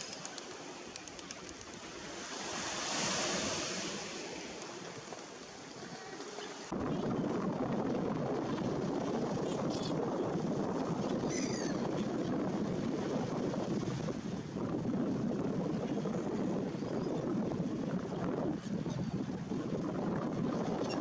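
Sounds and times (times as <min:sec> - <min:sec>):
sea waves washing: 0:00.0 - 0:21.0
wind noise on microphone: 0:00.0 - 0:21.0.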